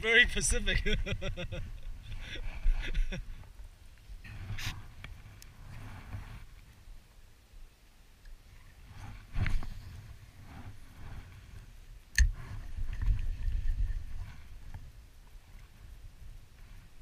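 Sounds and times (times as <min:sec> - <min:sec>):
low rumbling wind: 0:00.0 - 0:17.0.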